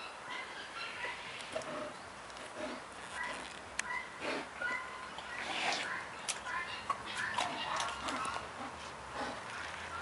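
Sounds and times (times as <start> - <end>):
bear wet chewing: 1.0 - 10.0.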